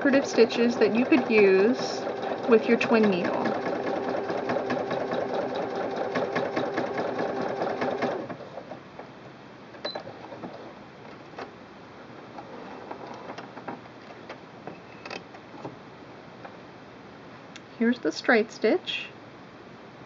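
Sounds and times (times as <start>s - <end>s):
sewing machine clattering: 0.0s - 8.4s.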